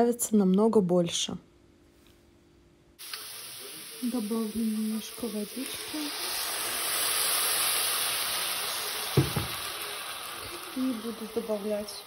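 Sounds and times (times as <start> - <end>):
meat and cabbage sizzling in pan: 3.0 - 12.0.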